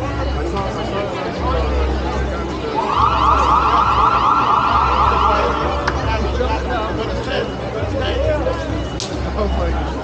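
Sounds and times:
loud warbling siren: 0:02.7 - 0:06.0.

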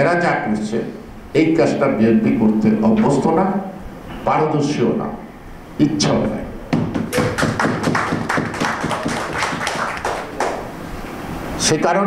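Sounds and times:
audience clapping: 0:06.9 - 0:10.9.

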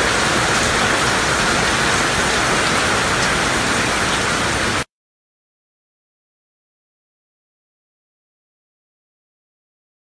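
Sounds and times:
heavy rain falling: 0:00.0 - 0:04.9.

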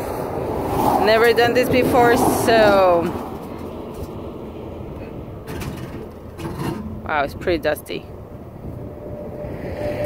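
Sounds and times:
traffic rumbling by: 0:00.0 - 0:10.0.

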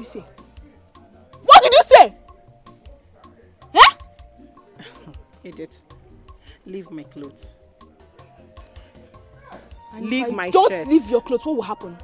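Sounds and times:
quiet background music: 0:00.0 - 0:12.0
woman's sharp vocal exclamation: 0:03.8 - 0:04.0.

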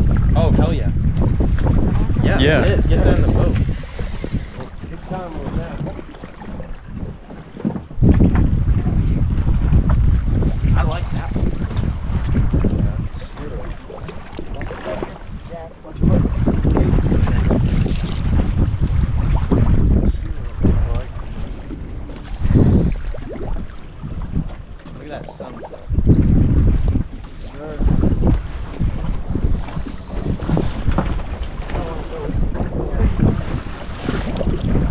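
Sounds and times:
wind buffeting microphone: 0:00.0 - 0:34.9.

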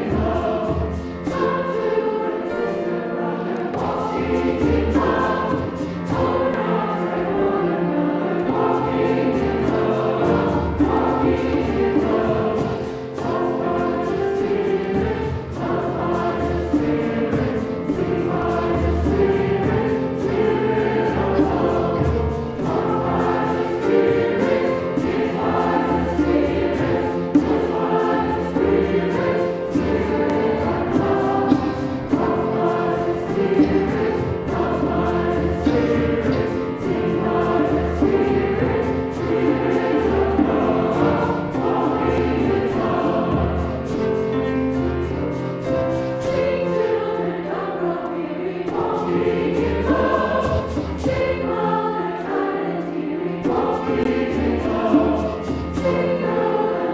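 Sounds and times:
mixed choir singing: 0:00.0 - 0:56.9
piano accompaniment: 0:00.0 - 0:56.9.

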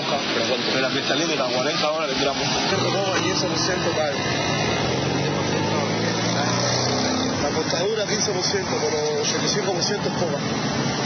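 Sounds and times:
noisy background: 0:00.0 - 0:11.0.

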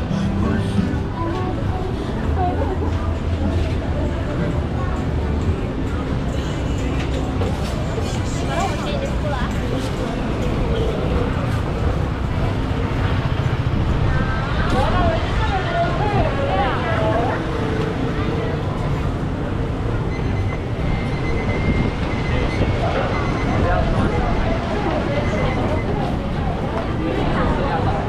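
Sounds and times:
passers-by talking: 0:00.0 - 0:28.0
traffic rumble: 0:00.0 - 0:28.0.

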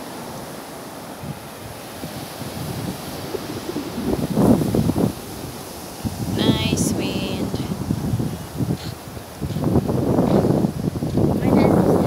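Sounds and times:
small waves washing on sand: 0:00.0 - 0:12.0
wind buffeting microphone: 0:00.0 - 0:12.0.

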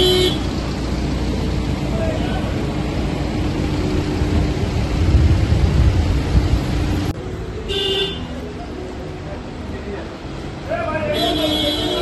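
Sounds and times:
low rumble of traffic: 0:00.0 - 0:12.0.

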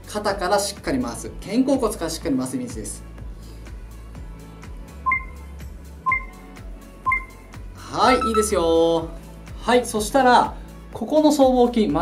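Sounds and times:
background music: 0:00.0 - 0:12.0
short electronic beeps: 0:05.0 - 0:05.5, 0:06.1 - 0:06.4, 0:07.1 - 0:07.4, 0:08.1 - 0:08.6.

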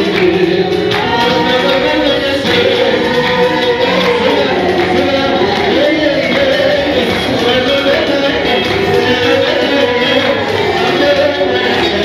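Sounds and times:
congregation singing: 0:00.0 - 0:12.0
hands clapping: 0:00.0 - 0:12.0.

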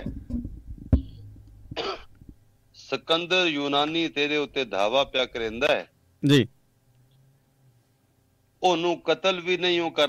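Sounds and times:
man clearing his throat: 0:01.8 - 0:02.1.

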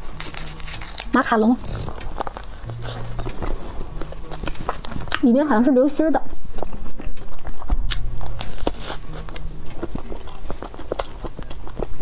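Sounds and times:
person chewing cake: 0:00.0 - 0:12.0.

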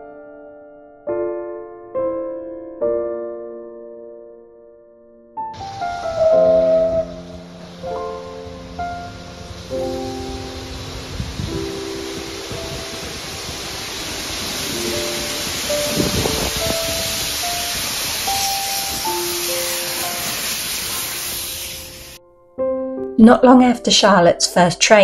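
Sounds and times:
piano music: 0:00.0 - 0:24.8
steam train hissing and running: 0:05.6 - 0:22.2.

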